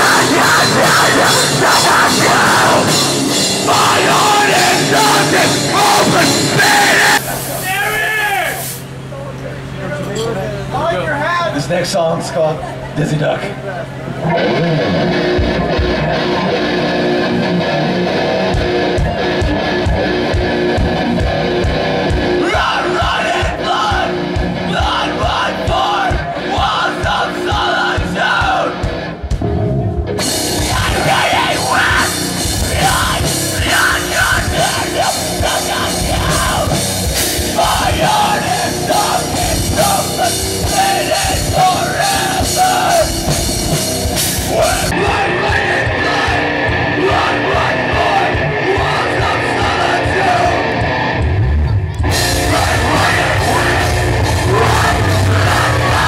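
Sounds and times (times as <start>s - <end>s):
person singing: 0.0s - 7.2s, 44.4s - 50.6s, 52.1s - 56.0s
drum kit: 0.0s - 8.2s, 14.3s - 56.0s
bass guitar: 0.0s - 56.0s
distorted electric guitars: 0.0s - 56.0s.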